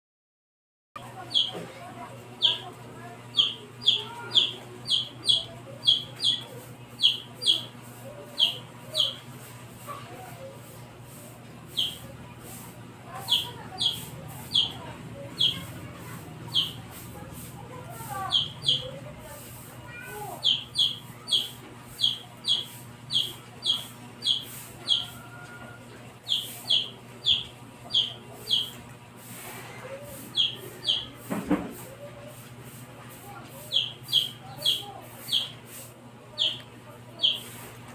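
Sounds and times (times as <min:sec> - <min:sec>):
bird chirping: 0:01.3 - 0:01.6, 0:02.4 - 0:02.7, 0:03.3 - 0:07.7, 0:08.4 - 0:09.2, 0:11.7 - 0:12.1, 0:13.2 - 0:15.7, 0:16.5 - 0:16.8, 0:18.2 - 0:18.9, 0:20.4 - 0:25.2, 0:26.2 - 0:28.8, 0:30.3 - 0:31.1, 0:33.7 - 0:35.5, 0:36.4 - 0:36.6, 0:37.2 - 0:37.5.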